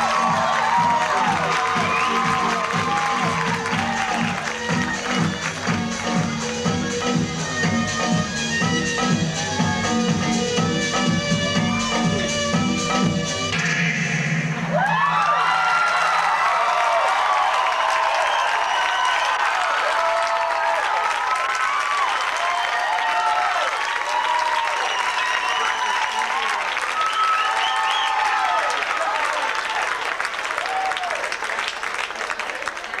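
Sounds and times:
cheering shouts and whoops: 0.0s - 5.1s, 9.3s - 10.1s, 14.6s - 31.3s
audience applauding: 0.0s - 6.9s, 14.7s - 33.0s.

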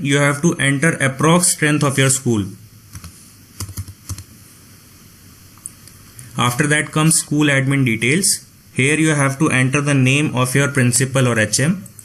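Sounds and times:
faint steady hiss: 0.0s - 12.0s
keyboard keystrokes: 2.9s - 4.3s.

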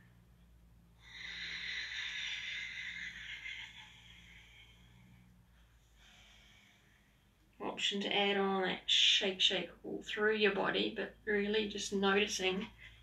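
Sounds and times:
faint low hum: 0.0s - 13.0s
person exhaling: 1.0s - 7.3s.

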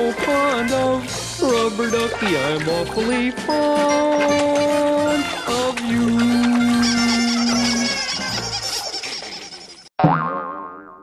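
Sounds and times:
person singing: 0.0s - 8.0s
cartoon boing sound effect: 10.0s - 11.0s.

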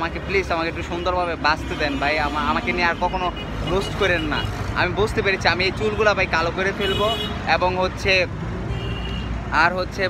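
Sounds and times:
man talking: 0.0s - 8.4s, 9.4s - 10.0s
low rumble of street traffic: 0.0s - 10.0s.

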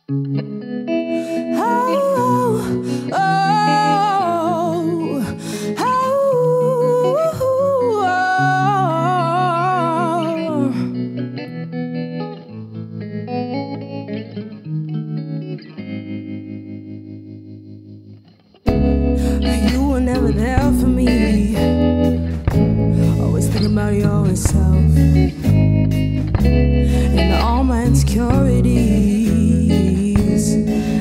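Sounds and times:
electric guitar: 0.0s - 31.0s
woman singing: 1.2s - 11.1s, 18.9s - 25.6s, 26.8s - 31.0s
bass guitar: 16.0s - 31.0s
drums: 18.7s - 31.0s.

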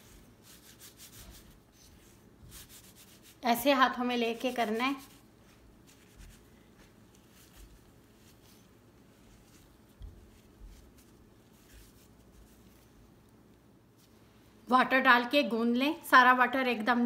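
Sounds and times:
hands rubbing flour in bowl: 0.0s - 13.2s.

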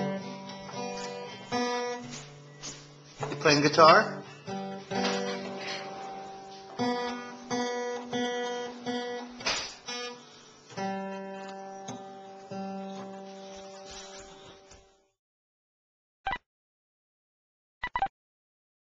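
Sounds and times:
acoustic guitar strums ringing: 0.0s - 15.0s.

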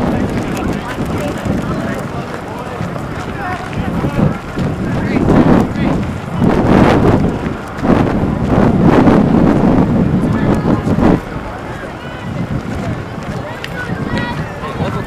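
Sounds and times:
crowd talking and calling out: 0.0s - 15.0s
wind buffeting microphone: 0.0s - 15.0s.

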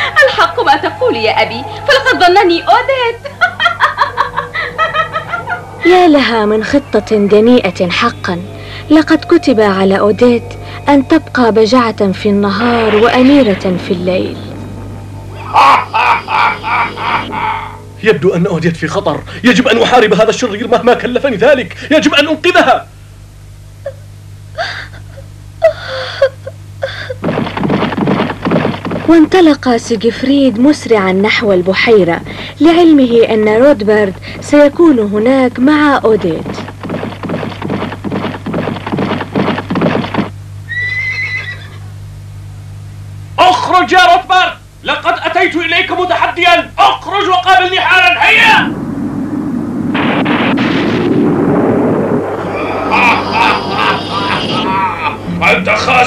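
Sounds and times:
steady low hum: 0.0s - 56.0s
cartoon villain cackling laugh: 3.2s - 5.6s, 15.4s - 17.8s, 52.6s - 55.4s
horse whinnying: 40.7s - 41.8s.

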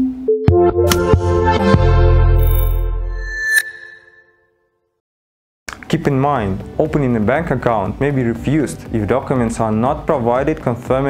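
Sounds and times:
synth background music: 0.0s - 4.3s
bright chime-like hit: 2.5s - 4.3s.

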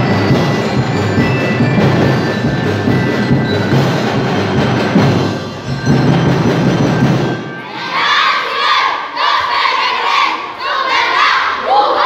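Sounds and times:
percussion music: 0.0s - 9.1s
children shouting in unison: 7.6s - 12.0s.

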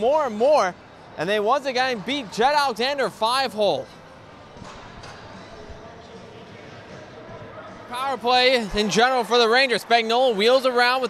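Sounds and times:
murmur of distant voices: 0.0s - 11.0s.

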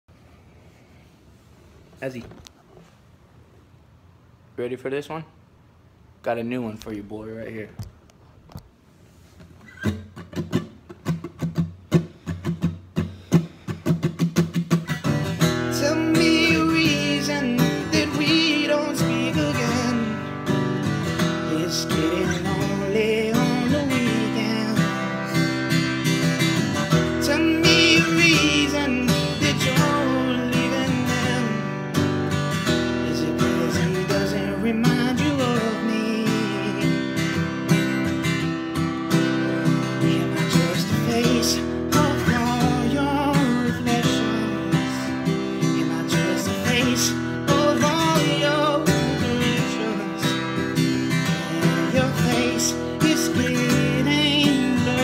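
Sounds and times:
acoustic guitar strumming: 9.6s - 55.0s.

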